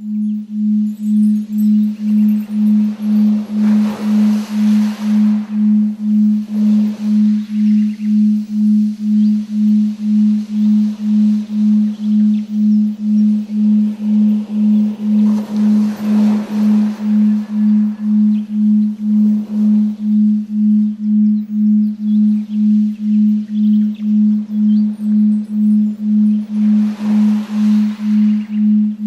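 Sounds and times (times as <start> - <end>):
faint hiss: 0.0 - 29.0.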